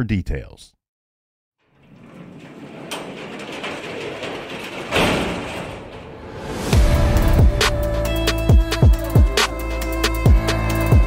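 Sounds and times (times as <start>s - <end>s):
music: 6.7s - 11.0s.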